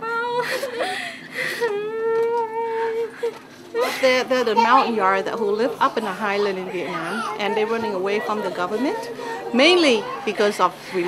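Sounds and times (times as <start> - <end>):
woman weeping and wailing: 0.0 - 4.3.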